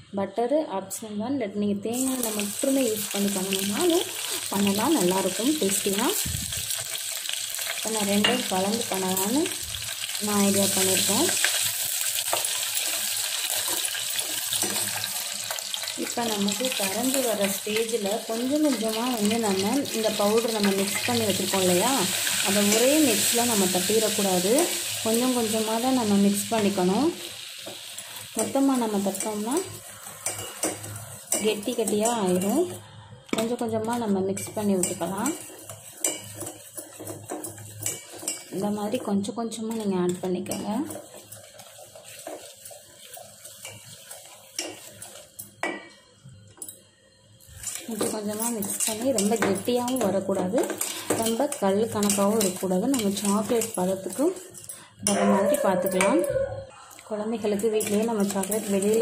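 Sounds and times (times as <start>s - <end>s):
steady sizzle: 1.9s - 59.0s
wire whisk scraping steel bowl: 34.8s - 38.6s.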